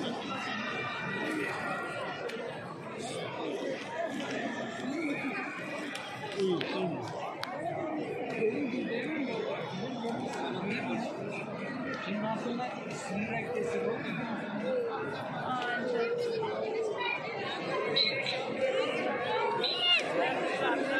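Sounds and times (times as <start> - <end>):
crowd chatter in a hall: 0.0 - 20.9.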